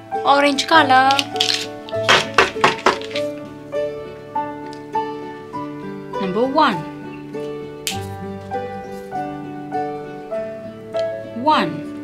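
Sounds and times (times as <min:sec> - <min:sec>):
background music: 0:00.0 - 0:12.0
plastic markers knocking together: 0:01.0 - 0:03.4.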